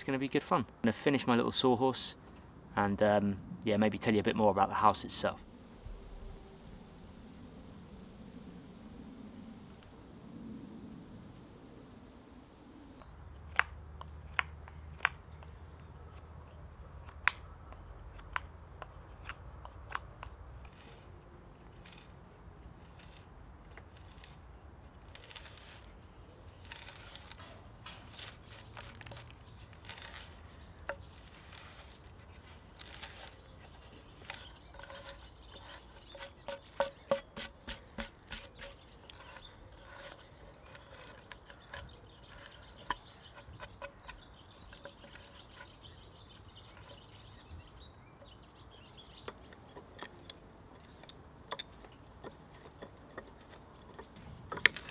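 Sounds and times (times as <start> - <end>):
knife shaving wood: 19.1 - 45.8, 52.6 - 54.9
hand auger boring into log: 20.6 - 45.8, 49.2 - 54.9
loud wood cracks: 25.0 - 35.2, 54.0 - 54.9.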